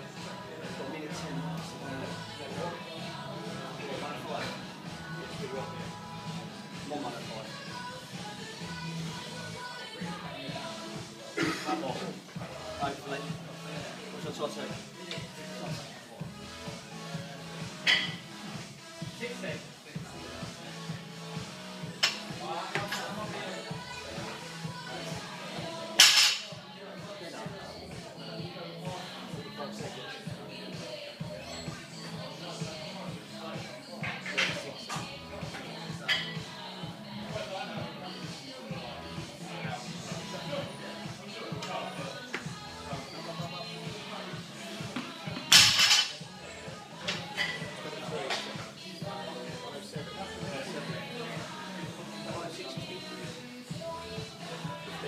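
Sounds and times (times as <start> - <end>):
background music: 0.0 - 55.0
music with steady beat: 34.9 - 55.0.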